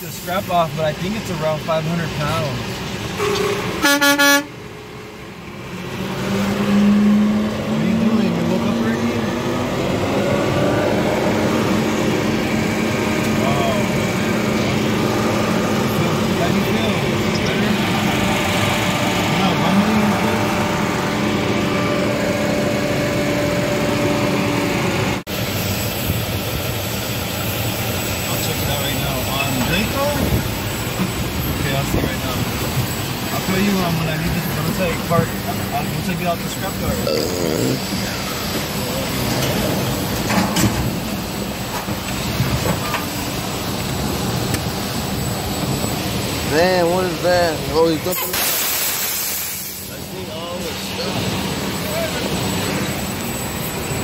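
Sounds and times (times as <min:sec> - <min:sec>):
engines idling hum: 0:00.0 - 0:54.0
indistinct voices: 0:13.2 - 0:22.9, 0:33.3 - 0:40.0.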